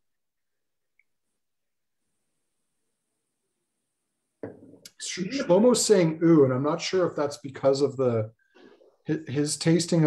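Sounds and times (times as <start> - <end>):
person speaking: 4.4 - 10.0.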